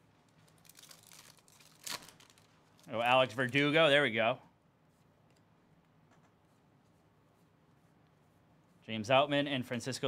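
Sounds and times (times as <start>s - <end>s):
foil wrapper crinkling: 0.4s - 3.0s
foil wrapper ripping: 0.6s - 2.5s.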